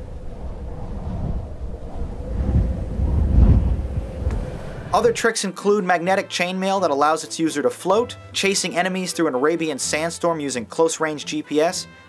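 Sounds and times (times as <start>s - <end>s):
deep rumbling wind: 0.0s - 5.2s.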